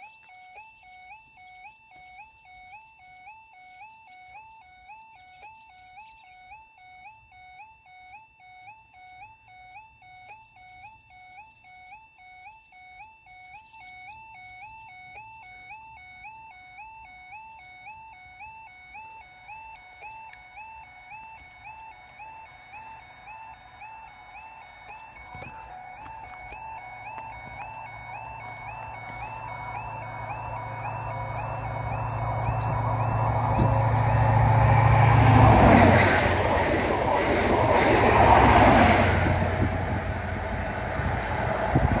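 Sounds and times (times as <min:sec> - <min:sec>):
crossing warning warble: 0:00.0 - 0:42.0
train passing: 0:21.5 - 0:42.0.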